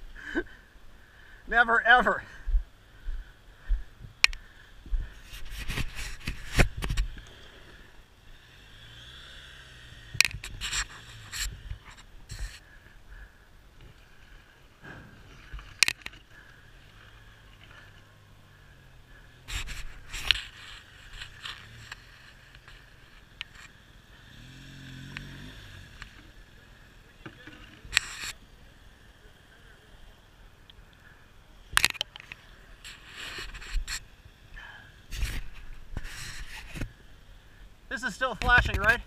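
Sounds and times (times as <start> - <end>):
footsteps on rocky dirt trail: 2.2 - 7.8.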